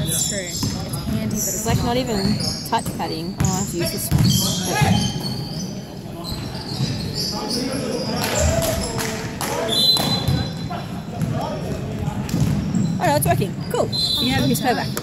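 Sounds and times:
basketball bouncing on hardwood: 1.7 - 4.4.

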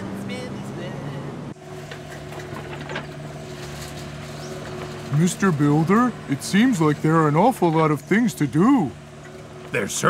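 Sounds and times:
cartoon engine hum with rattle: 1.3 - 10.0.

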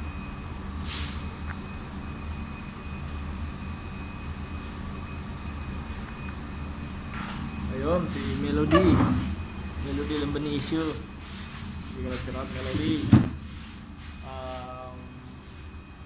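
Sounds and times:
faint high whine: 0.0 - 16.0
machinery rumbling: 4.8 - 16.0.

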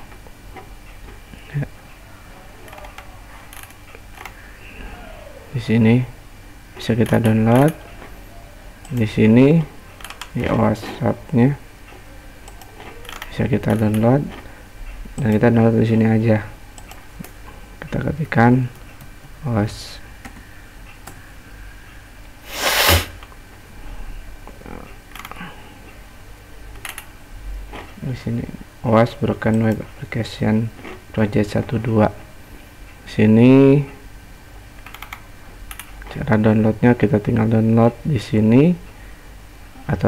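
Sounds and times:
low steady hum: 0.0 - 40.0
person sneezing: 22.5 - 23.2.

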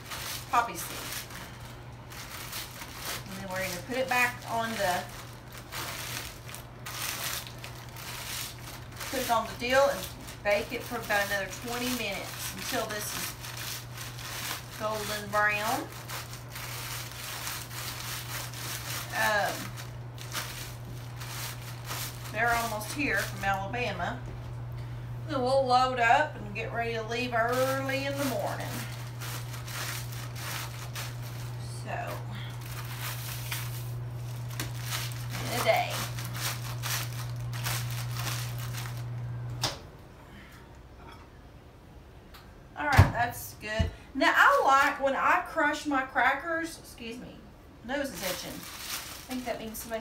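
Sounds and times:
crackers being crushed: 0.0 - 23.6, 27.5 - 31.6, 32.5 - 39.7, 48.1 - 50.0
plastic wrapper crinkling: 0.0 - 23.6, 27.3 - 31.6, 32.5 - 39.3, 48.0 - 50.0
steady low hum: 0.0 - 50.0.

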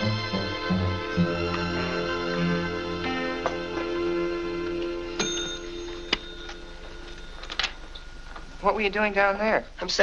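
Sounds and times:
small bell ringing: 5.2 - 8.2.

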